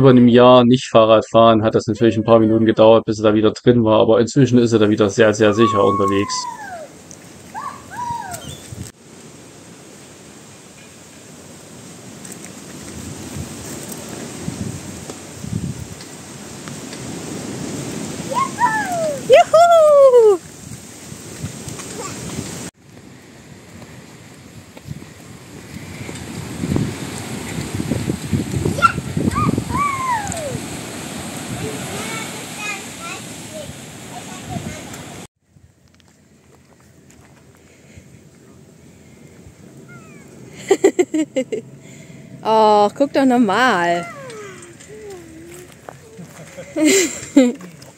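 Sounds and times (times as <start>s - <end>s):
high falling calls: 5.2s - 8.9s, 17.2s - 20.6s, 28.8s - 33.2s, 39.7s - 41.6s, 42.3s - 47.5s
wind buffeting microphone: 5.2s - 9.0s, 12.7s - 35.8s.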